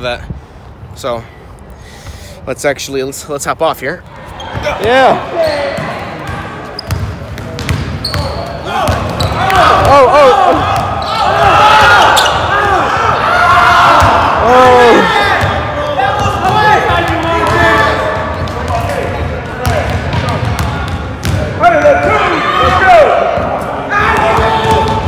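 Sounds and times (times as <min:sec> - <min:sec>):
sneakers squeaking: 0:04.0 - 0:12.8, 0:15.2 - 0:25.0.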